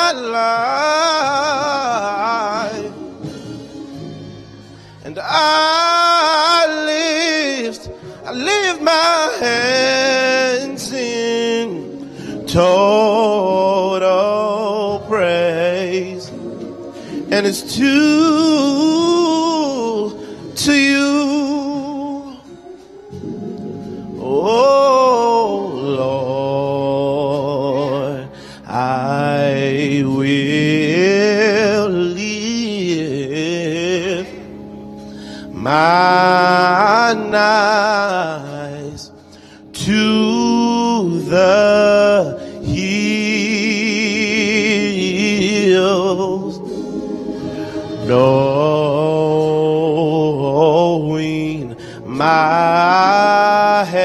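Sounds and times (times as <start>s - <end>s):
man singing gospel: 0.0s - 54.0s
singer breathing: 3.2s - 5.1s, 7.9s - 8.2s, 12.0s - 12.5s, 16.9s - 17.3s, 20.1s - 20.6s, 28.3s - 28.7s, 35.0s - 35.6s, 39.2s - 39.7s, 42.4s - 42.7s, 46.6s - 48.0s, 51.7s - 52.1s.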